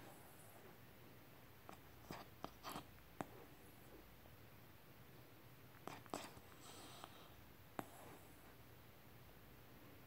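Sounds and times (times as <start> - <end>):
dog breath: 6.0 - 8.4.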